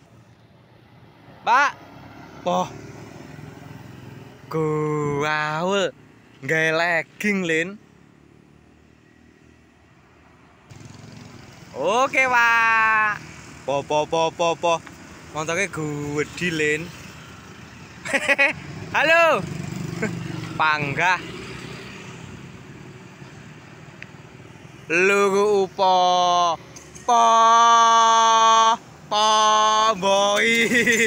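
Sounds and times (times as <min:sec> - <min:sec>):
distant road traffic rumble: 0:00.0 - 0:31.0
scooter and car engines: 0:00.0 - 0:31.0
distant motorcycle engine: 0:10.7 - 0:22.5.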